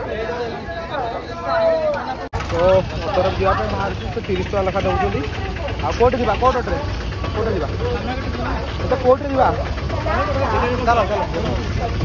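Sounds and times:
idling vehicle engines rumble: 0.0 - 12.0
voices talking: 0.0 - 12.0.

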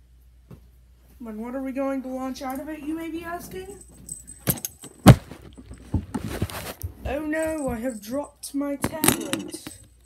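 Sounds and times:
tablet clattering on falling: 8.8 - 9.9.

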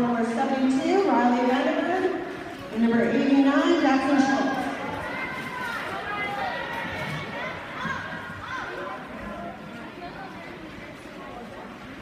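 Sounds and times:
spectators talking and calling out: 0.0 - 12.0.

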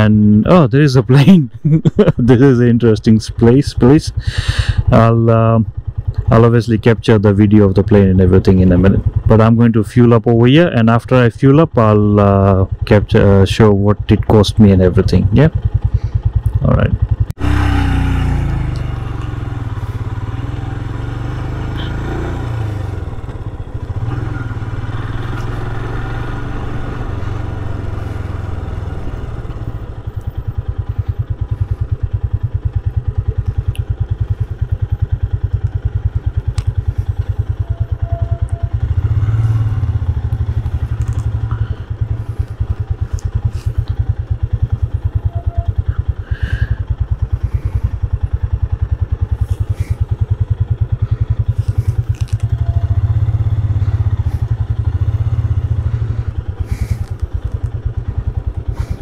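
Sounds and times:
motorcycle engine idling: 1.6 - 59.0
light clicks and clatters: 51.6 - 52.5.

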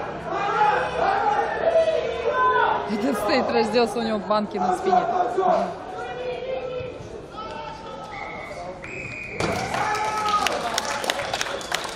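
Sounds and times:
high whistle tone: 8.1 - 9.5.

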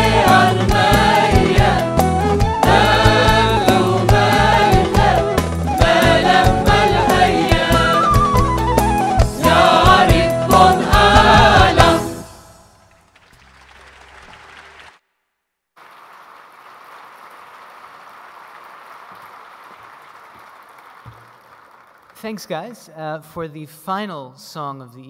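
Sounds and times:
choir singing with guitar and drum: 0.0 - 12.6
audience applauding: 13.0 - 15.0, 15.8 - 22.6.

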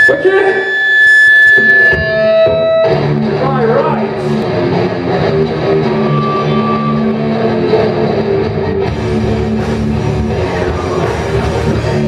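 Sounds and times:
high-pitched stage tone: 0.0 - 12.0.

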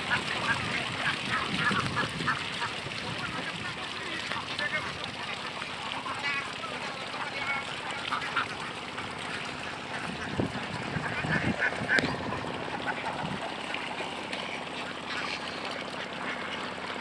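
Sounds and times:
ducks quacking: 0.0 - 17.0.

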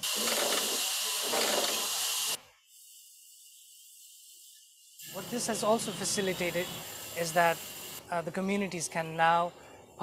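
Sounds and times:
band saw hissing: 0.0 - 8.0
faint hiss: 0.6 - 10.0.

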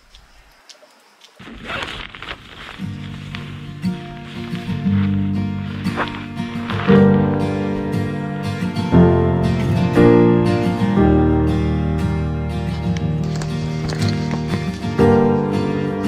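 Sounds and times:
acoustic guitar music: 2.6 - 16.0.

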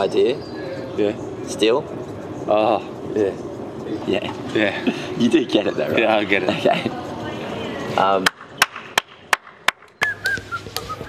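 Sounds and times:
hand claps: 8.2 - 10.9.

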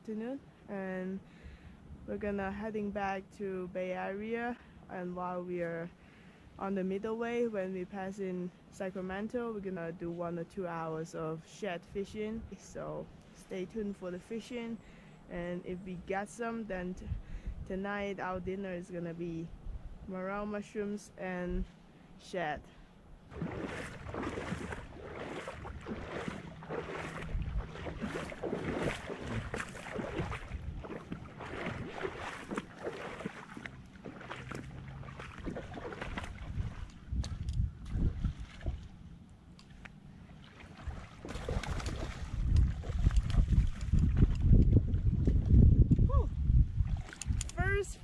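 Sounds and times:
wind buffeting microphone: 16.7 - 18.6, 23.3 - 39.0, 40.8 - 48.0
river water splashing: 23.1 - 44.6, 46.8 - 47.6.

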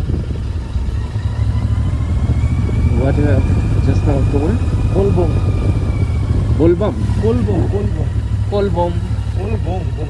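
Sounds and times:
motorcycle engine rumbling: 0.0 - 10.0.

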